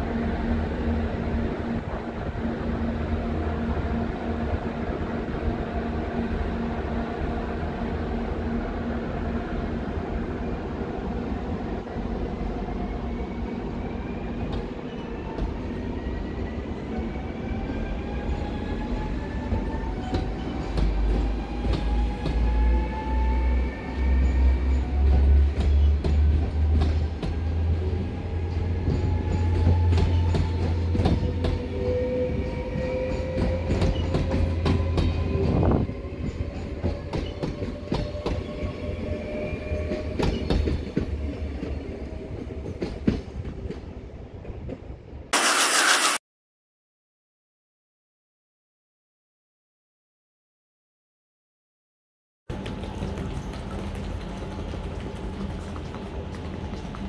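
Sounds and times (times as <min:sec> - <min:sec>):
train low rumble: 0:00.0 - 0:45.3, 0:52.5 - 0:57.0.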